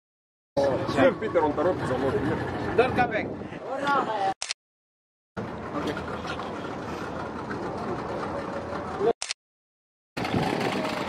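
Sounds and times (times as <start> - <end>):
boat engine rumble: 0.6 - 3.4, 5.4 - 9.2, 10.2 - 11.0.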